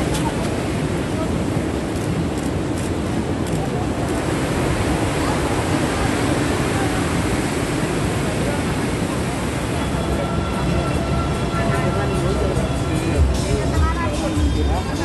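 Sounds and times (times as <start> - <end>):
people talking: 0.0 - 1.8, 4.9 - 15.0
ocean surf breaking: 0.0 - 12.9
music: 9.9 - 15.0.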